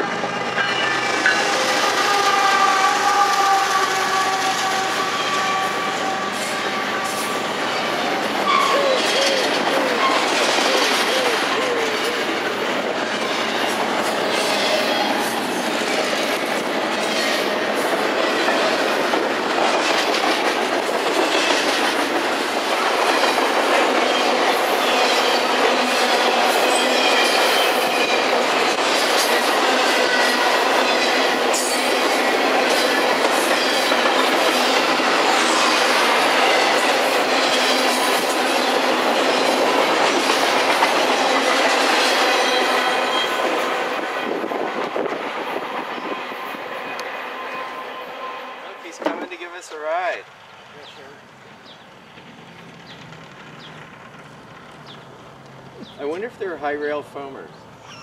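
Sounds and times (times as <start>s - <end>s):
freight train rumble and rattle: 0.0s - 47.9s, 48.6s - 57.9s
faint high wheel squeals: 5.1s - 10.3s, 46.0s - 49.0s, 57.8s - 58.0s
wheels clicking over rail joints: 51.6s - 56.3s.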